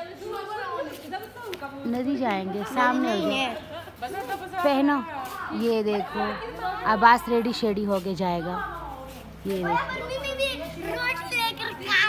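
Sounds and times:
children talking: 0.0 - 12.0.

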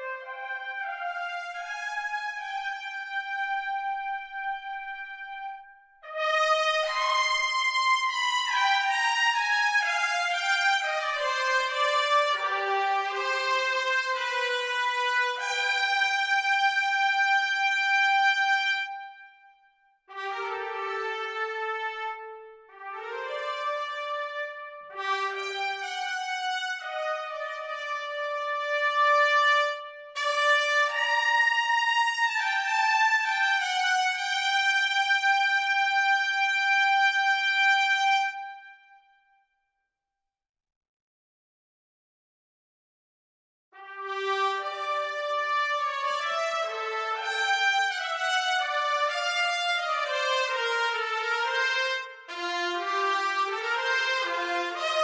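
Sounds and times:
trumpet section playing legato: 30.2 - 34.3, 43.9 - 55.0.

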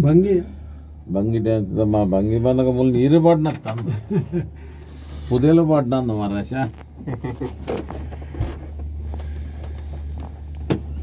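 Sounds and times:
gondola cabin humming: 0.0 - 11.0.

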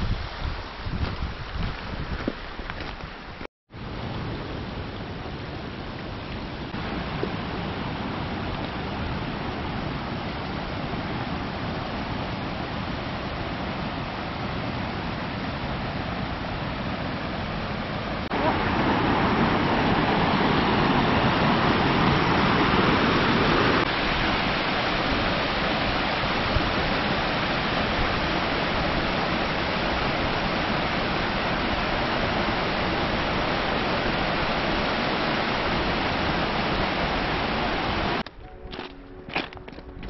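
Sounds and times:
stream rushing over rocks: 0.0 - 40.0
soft music with plucked notes: 38.3 - 40.0.

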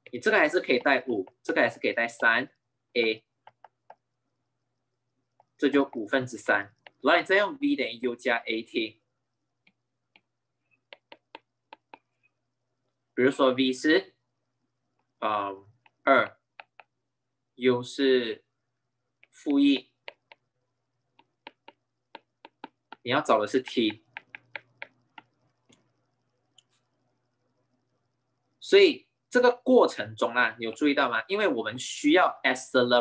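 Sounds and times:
stylus tapping on glass screen: 0.0 - 1.5, 3.4 - 4.1, 9.6 - 12.1, 15.8 - 17.0, 19.2 - 20.5, 21.1 - 25.8.

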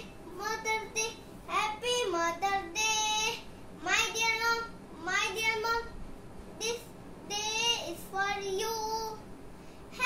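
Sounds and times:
boy singing: 0.0 - 6.0, 6.6 - 9.2.

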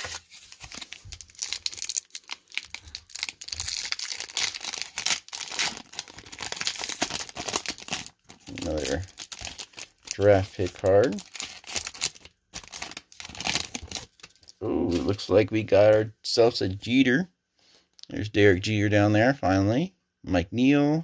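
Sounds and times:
foil wrapper crinkling and tearing: 0.0 - 15.0.

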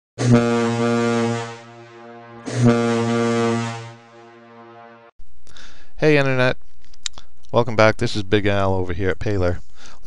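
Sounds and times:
deep horn blasts: 0.2 - 5.1.

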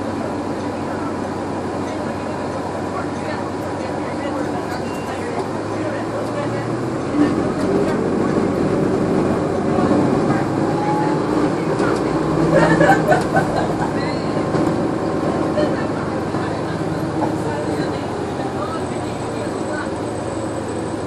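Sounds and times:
bus engine running: 0.0 - 21.0
passengers talking: 0.0 - 21.0
road rumble: 0.0 - 21.0.

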